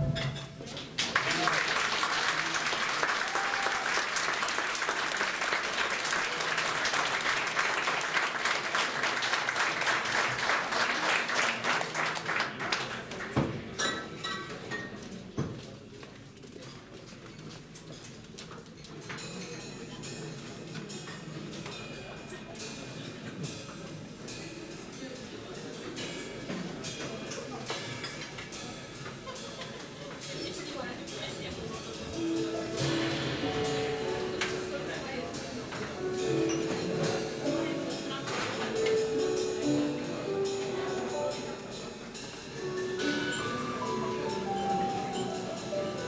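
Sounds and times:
keyboard melody: 0.0s - 0.7s, 31.9s - 46.0s.

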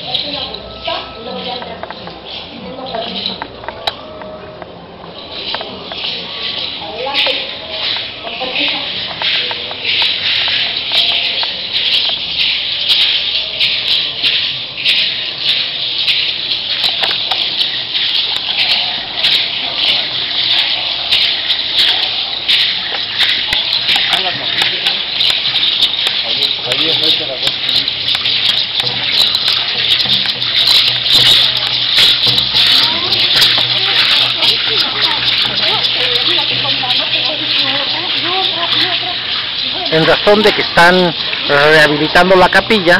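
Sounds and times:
dancers' rattles shaking: 0.0s - 3.9s, 5.1s - 42.9s
crowd voices: 0.0s - 42.9s.

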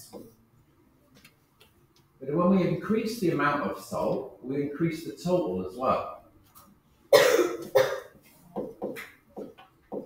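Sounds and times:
person coughing: 7.2s - 8.1s.

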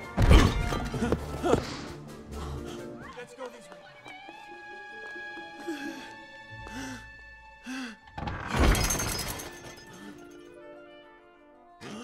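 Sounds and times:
orchestral film score: 0.0s - 8.5s
crockery crashing and shattering: 8.4s - 10.3s.

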